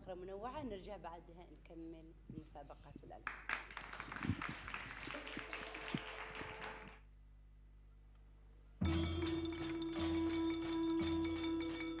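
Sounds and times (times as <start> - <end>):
hand claps: 3.3 - 7.0.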